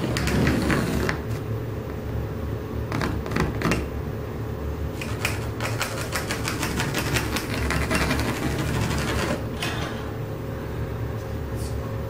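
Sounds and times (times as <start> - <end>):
pencil scratching on drywall: 5.8 - 9.4.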